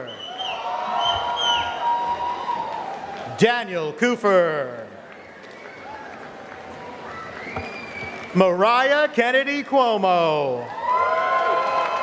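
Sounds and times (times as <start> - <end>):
audience applauding: 4.9 - 8.3, 10.6 - 12.0.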